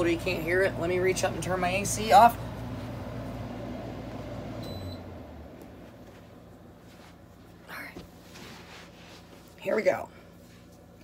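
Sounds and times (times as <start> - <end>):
air conditioner hum winding down: 0.0 - 11.0.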